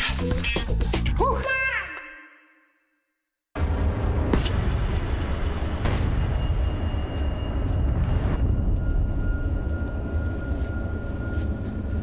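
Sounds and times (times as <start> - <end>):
low rumble: 3.6 - 12.0.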